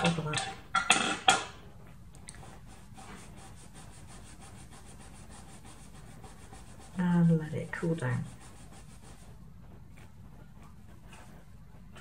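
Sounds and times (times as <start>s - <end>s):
faint rubbing: 1.9s - 12.0s.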